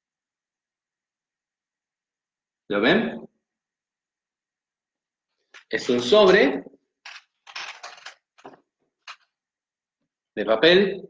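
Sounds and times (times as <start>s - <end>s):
paper envelope crinkling: 7.1s - 8.2s.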